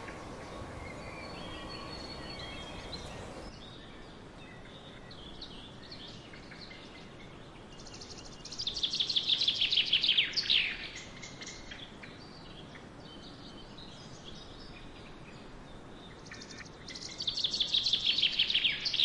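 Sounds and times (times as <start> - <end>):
songbird singing: 0.0 - 19.0.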